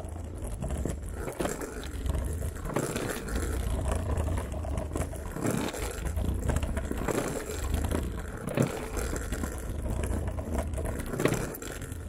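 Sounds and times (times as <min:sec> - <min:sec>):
scooter rolling over paving stones: 0:00.0 - 0:12.0.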